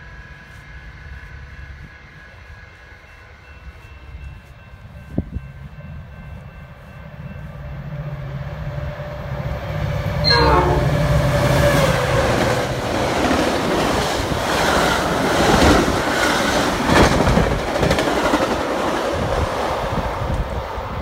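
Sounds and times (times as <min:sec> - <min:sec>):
train horn: 0:10.2 - 0:12.2.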